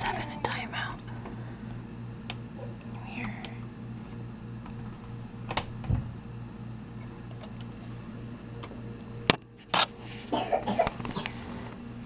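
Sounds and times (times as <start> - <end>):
steady pulsing hum: 0.0 - 12.0.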